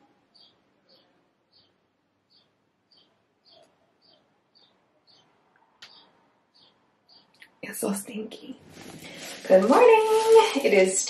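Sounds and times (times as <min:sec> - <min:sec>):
faint bird chirping: 0:00.0 - 0:10.3.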